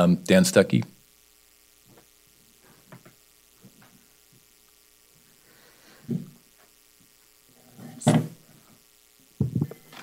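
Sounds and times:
low electrical hum: 0:00.0 - 0:10.0
thumps on table microphone: 0:06.0 - 0:06.4, 0:08.0 - 0:08.4, 0:09.4 - 0:09.8.

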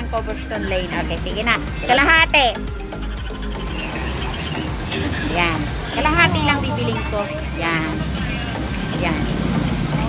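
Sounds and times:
street traffic rumble: 0:00.0 - 0:10.0
vehicle engine running: 0:00.0 - 0:10.0.

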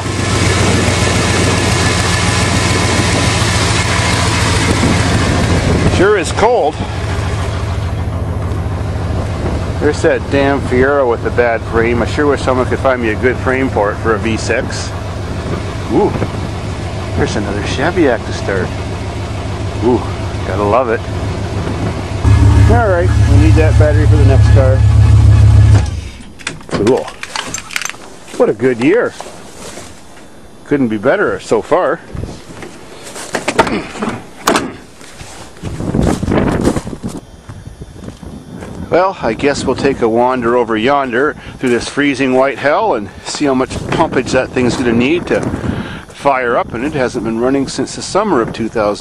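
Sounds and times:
car engine idling: 0:00.0 - 0:27.8
shuffling and handling noises: 0:26.5 - 0:30.3, 0:32.1 - 0:34.2, 0:34.9 - 0:37.2.

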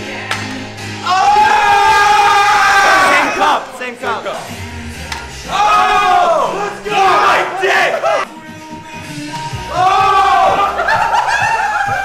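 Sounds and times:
background music: 0:00.0 - 0:12.0
young men yelling: 0:01.0 - 0:04.4, 0:05.4 - 0:08.3, 0:09.6 - 0:12.0.

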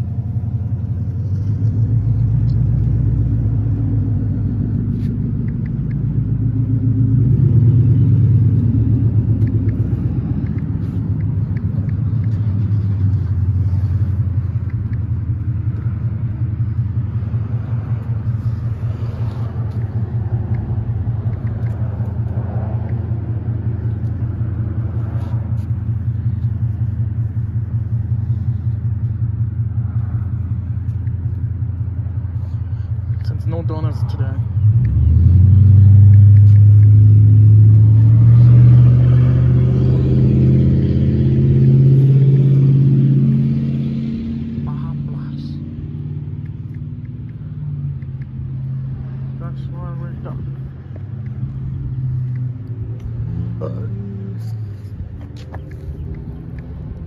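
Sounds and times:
engine idling: 0:00.0 - 0:34.8, 0:44.6 - 0:57.0.

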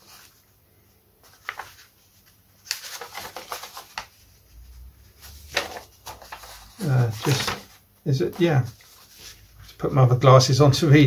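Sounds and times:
paper rustling and crackling: 0:01.2 - 0:09.8.

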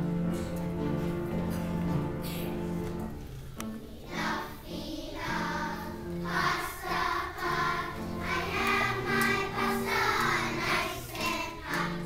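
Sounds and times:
children's choir singing: 0:03.6 - 0:12.0.

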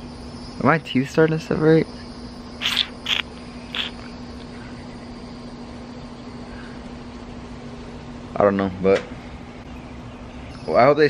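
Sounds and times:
faint high insect drone: 0:00.0 - 0:11.0
steady low hum: 0:00.0 - 0:11.0
breath hissing through teeth: 0:02.6 - 0:04.1.

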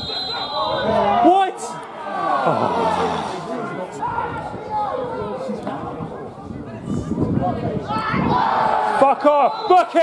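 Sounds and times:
crowd and players shouting: 0:00.0 - 0:05.7, 0:07.6 - 0:10.0.

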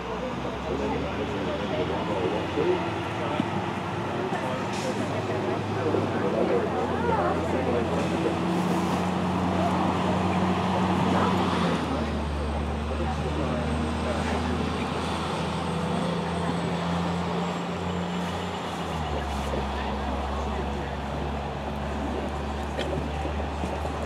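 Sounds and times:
engine hum: 0:00.0 - 0:24.0
indistinct voices murmuring: 0:00.0 - 0:24.0.

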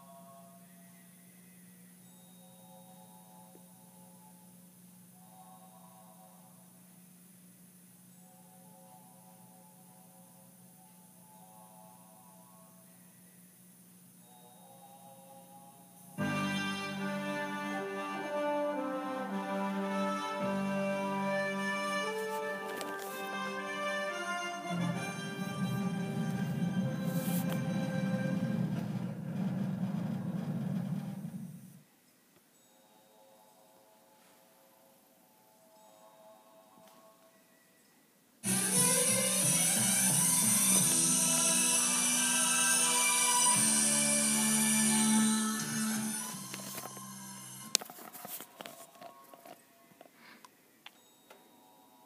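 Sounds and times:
low rumbling musical drone: 0:15.0 - 0:31.8, 0:38.4 - 0:47.8.

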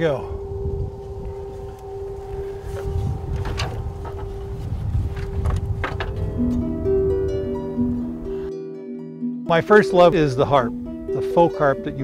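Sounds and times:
wind rumble on microphone: 0:00.0 - 0:08.4
wind harp strings droning: 0:00.0 - 0:12.0.

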